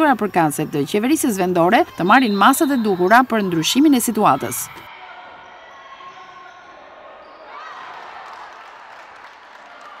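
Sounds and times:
players' voices: 0:00.0 - 0:05.4.

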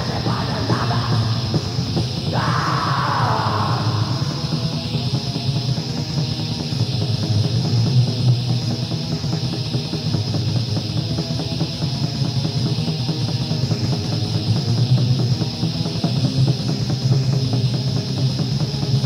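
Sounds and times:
distorted electric guitars: 0:00.0 - 0:19.0
fast drums: 0:00.0 - 0:19.0.

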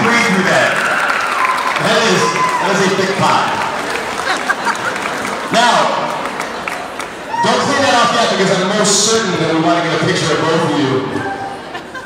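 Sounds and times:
crowd applauding: 0:00.0 - 0:08.4
voices cheering and calling out: 0:00.8 - 0:03.5, 0:07.2 - 0:08.6.

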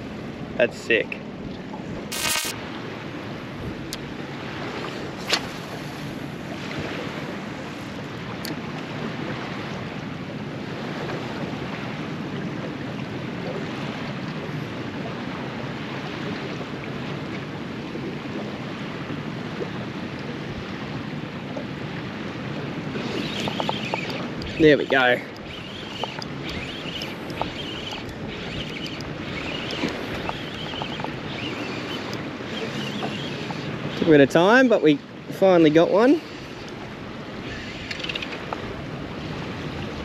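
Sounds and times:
water slapping boat hull: 0:03.6 - 0:40.0
wind buffeting microphone: 0:16.4 - 0:34.4.

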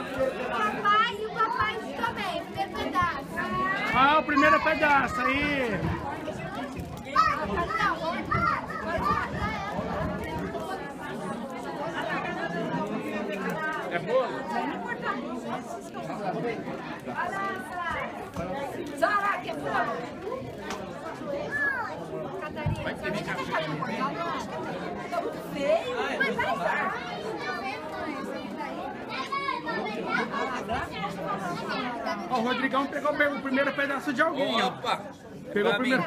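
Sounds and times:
chatter of many people: 0:00.0 - 0:36.0.

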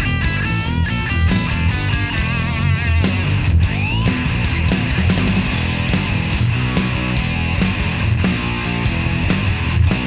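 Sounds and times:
bass and drums: 0:00.0 - 0:10.0
lead guitar with vibrato: 0:00.0 - 0:10.0.

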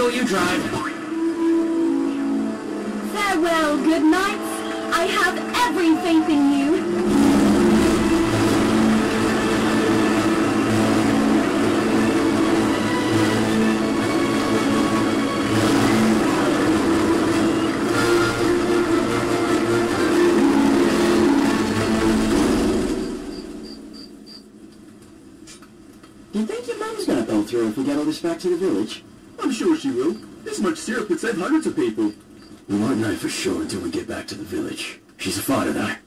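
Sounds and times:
background music: 0:00.0 - 0:23.9
truck engine running: 0:04.2 - 0:23.7.

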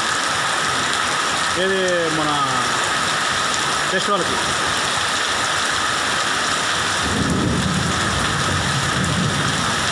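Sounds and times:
heavy rain on road: 0:00.0 - 0:09.9.

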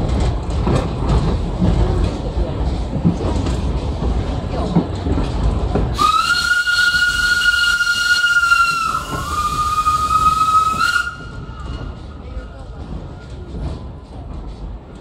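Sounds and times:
train rumbling on track: 0:00.0 - 0:15.0
steam locomotive whistle: 0:06.0 - 0:11.7.

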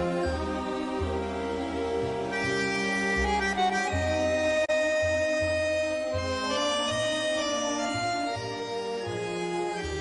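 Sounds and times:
reed instrument melody: 0:00.0 - 0:10.0.

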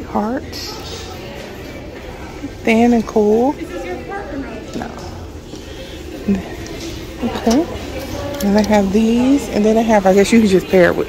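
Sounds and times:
faint murmured speech: 0:00.0 - 0:11.0.

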